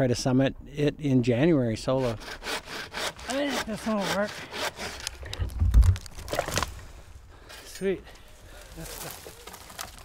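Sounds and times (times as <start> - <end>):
tree trunk cracking: 5.0 - 6.9, 8.7 - 10.0.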